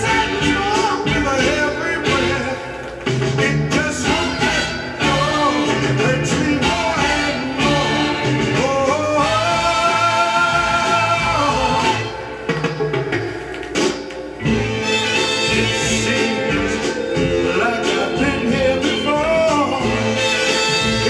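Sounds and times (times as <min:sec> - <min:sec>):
soul song singing over a band: 0:00.0 - 0:12.5, 0:14.5 - 0:21.0.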